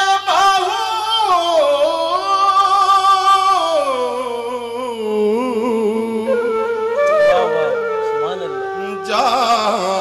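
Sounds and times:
bamboo flute melody: 0:06.2 - 0:10.0.

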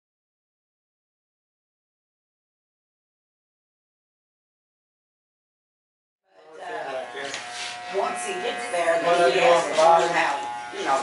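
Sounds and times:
electric hair clippers buzzing: 0:06.5 - 0:11.0.

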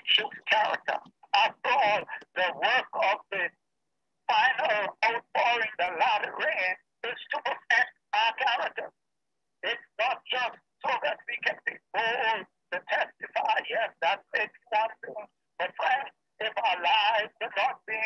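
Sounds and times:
man talking over video call: 0:00.0 - 0:03.6, 0:04.3 - 0:09.0, 0:09.6 - 0:18.0.

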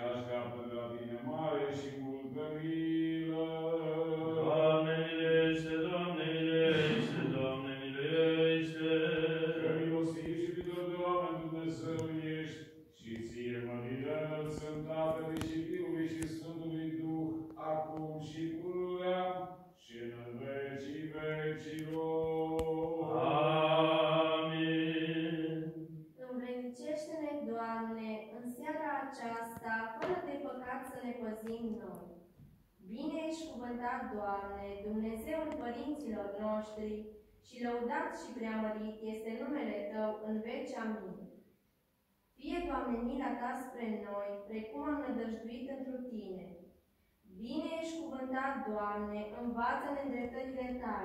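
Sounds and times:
man chanting a hymn: 0:00.0 - 0:25.8.

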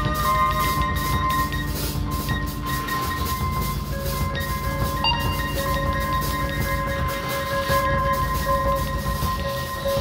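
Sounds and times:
experimental band music: 0:00.0 - 0:10.0.

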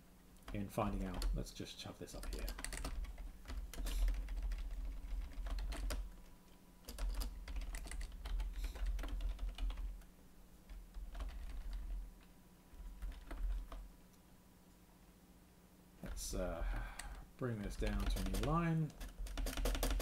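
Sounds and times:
typing on computer keyboard: 0:02.2 - 0:06.1, 0:06.8 - 0:10.0, 0:10.7 - 0:12.0, 0:12.7 - 0:13.9, 0:17.8 - 0:20.0.

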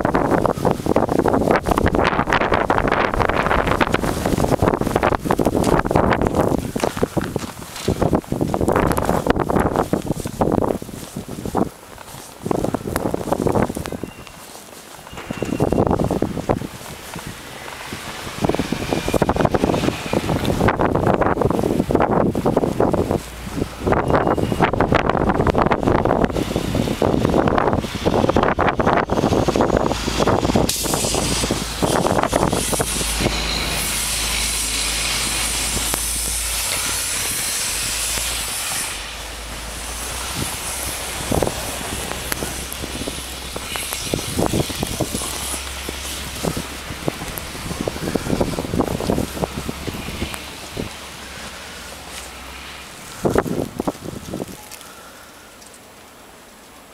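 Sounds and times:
blizzard wind buffeting microphone: 0:00.0 - 0:56.9.

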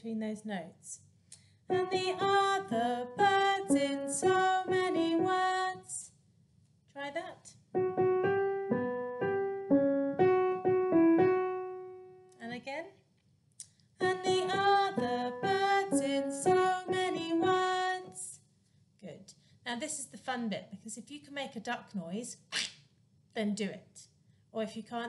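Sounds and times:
keyboard playing simple melody: 0:01.7 - 0:05.5, 0:07.7 - 0:12.4, 0:14.0 - 0:17.7
woman singing children's song: 0:01.7 - 0:06.1, 0:14.0 - 0:18.4.

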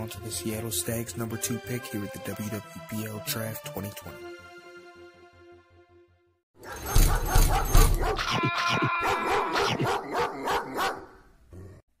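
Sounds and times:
dog barking: 0:06.6 - 0:11.3.

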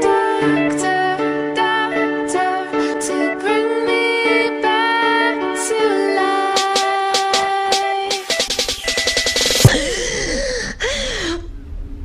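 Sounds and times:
woman gasping: 0:09.7 - 0:11.6.

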